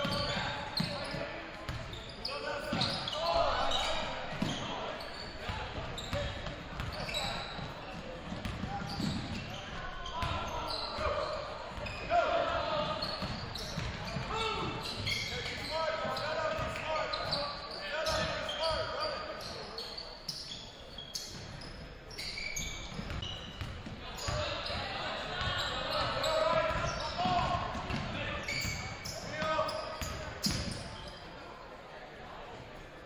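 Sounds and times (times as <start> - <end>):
sneakers squeaking: 0.0 - 31.5
basketball bouncing: 8.2 - 9.2, 13.2 - 14.3, 26.8 - 28.2.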